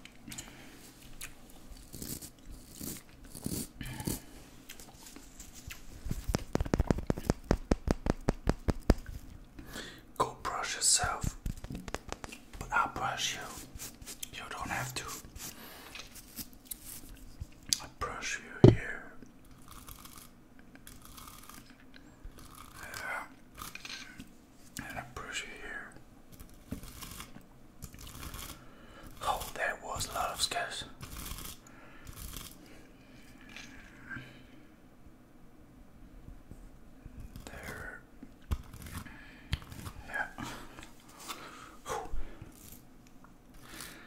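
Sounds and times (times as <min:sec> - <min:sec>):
mouth clicks and smacks: 0:05.6 - 0:09.6.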